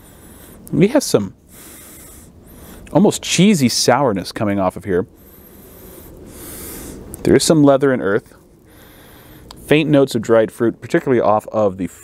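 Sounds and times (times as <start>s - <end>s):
slow sniff through nose: 5.2s - 7.1s.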